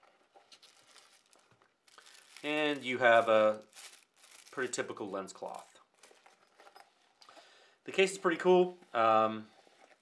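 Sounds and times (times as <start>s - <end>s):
plastic bag handling: 0.1s - 6.8s
fabric pouch rustling: 0.5s - 6.6s.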